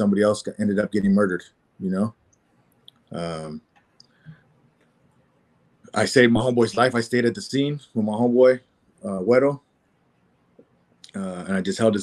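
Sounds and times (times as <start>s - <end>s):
man talking: 0.0s - 2.1s, 3.1s - 3.6s, 6.0s - 9.6s, 11.1s - 12.0s
faint throat sound: 3.2s - 4.4s, 11.1s - 11.9s.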